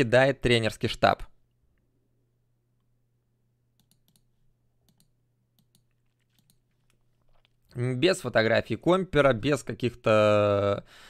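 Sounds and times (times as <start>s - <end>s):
computer clicks: 3.8s - 7.5s.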